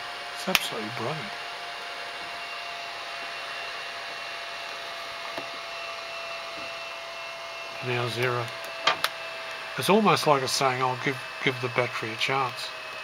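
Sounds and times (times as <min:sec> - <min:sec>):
fan whirring hiss with whine: 0:00.0 - 0:13.0.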